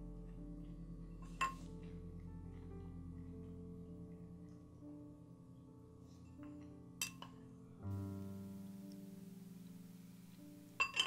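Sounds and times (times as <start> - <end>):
quiet instrumental music: 0.0 - 11.0
spoon clinking ceramic bowl: 10.8 - 11.0.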